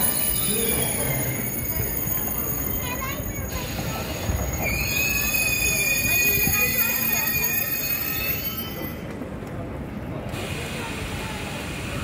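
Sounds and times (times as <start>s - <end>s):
high-pitched train whine: 0.0s - 9.2s
low train rumble: 0.0s - 12.0s.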